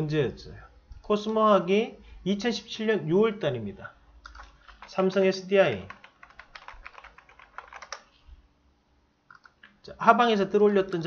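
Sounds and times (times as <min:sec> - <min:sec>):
computer keyboard typing: 0:04.2 - 0:05.2, 0:05.8 - 0:08.2, 0:09.3 - 0:09.7.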